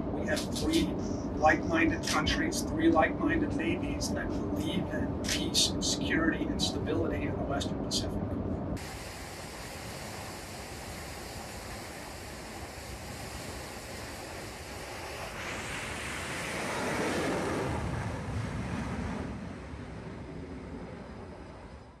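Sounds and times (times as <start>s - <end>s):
wind: 0.0s - 22.0s
machinery hiss: 8.8s - 16.7s.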